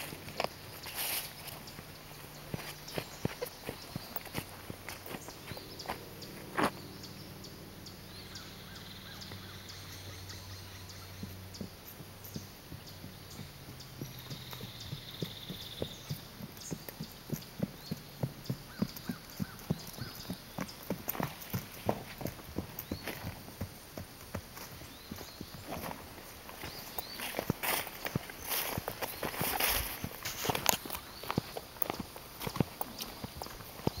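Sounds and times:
scuffing and rustling: 0.0 - 6.8, 25.6 - 34.0
horse hoofbeats on soft dirt: 0.0 - 7.2, 9.0 - 34.0.

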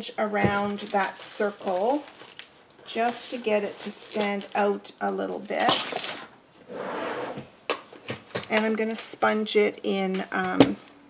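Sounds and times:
drawer sliding: 6.0 - 7.5.

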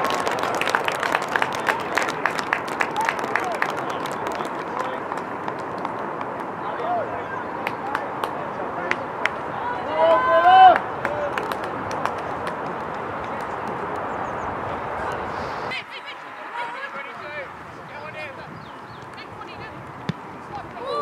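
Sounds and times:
sharp knocks and claps: 0.0 - 6.5, 7.6 - 9.4, 10.7 - 14.0
voices calling out: 0.0 - 21.0.

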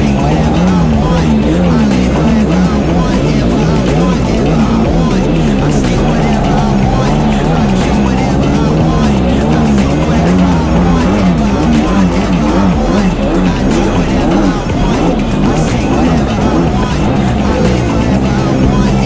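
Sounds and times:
background music: 0.0 - 19.0
jet ski engine at speed: 0.0 - 19.0.

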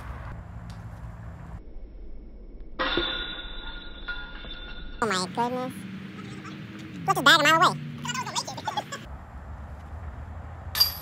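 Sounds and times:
disc striking basket chains: 2.8 - 5.1, 10.7 - 11.0.

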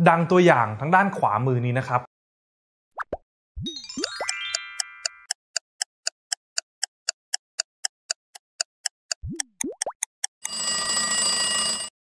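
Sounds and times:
clock ticks: 4.0 - 10.8.

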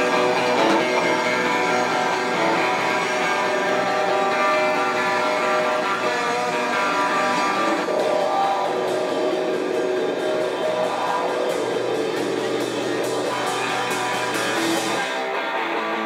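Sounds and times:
electric guitars: 0.0 - 16.0
live rock band playing: 0.0 - 16.0.

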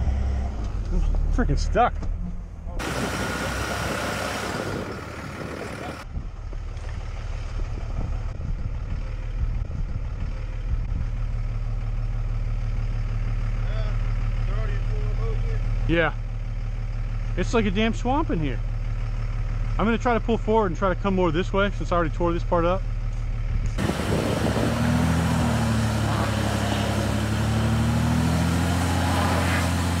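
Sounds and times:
truck engine idling: 0.0 - 30.0.

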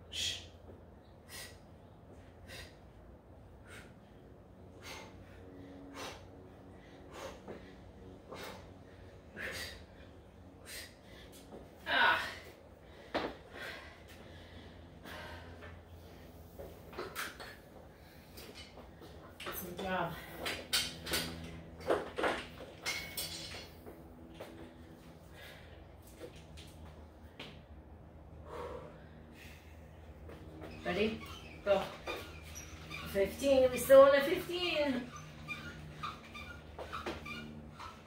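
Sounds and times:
steady low hum: 0.0 - 38.0.

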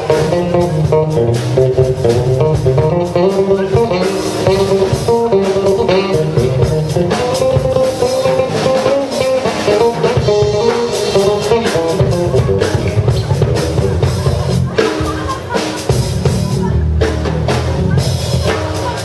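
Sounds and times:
drum kit with cymbals: 0.0 - 19.0
electric bass line: 0.0 - 19.0
guitar melody: 0.0 - 19.0.

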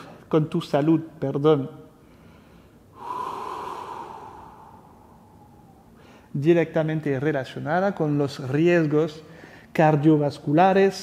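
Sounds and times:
man breathing out: 2.1 - 6.3.

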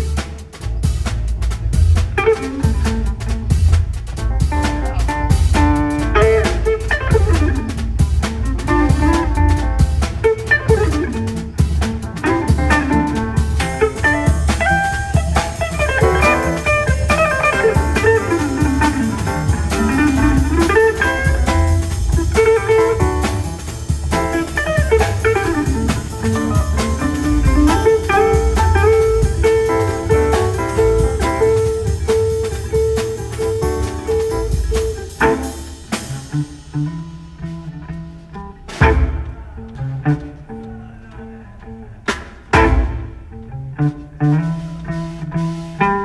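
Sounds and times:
piano: 0.0 - 41.1
bass: 0.0 - 46.0
drum kit: 0.0 - 46.0
electric jazz guitar lead: 0.0 - 46.0.

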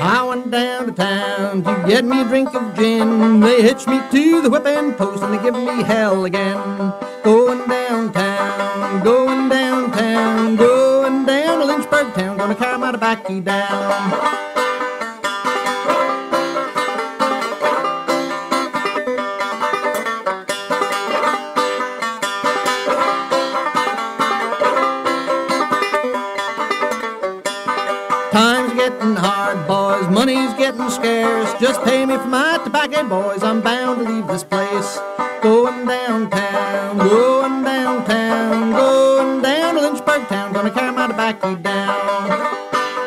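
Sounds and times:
acoustic guitar: 0.0 - 43.0
banjo: 0.0 - 43.0
string band playing: 0.0 - 43.0
fiddle sliding notes: 1.0 - 43.0.

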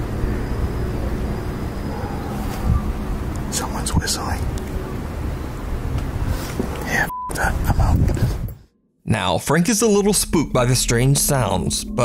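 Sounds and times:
short beep tone: 7.1 - 7.4.

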